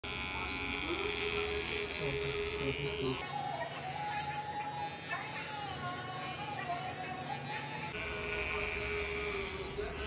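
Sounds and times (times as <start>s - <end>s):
electric hair clippers buzzing: 0.0s - 10.0s.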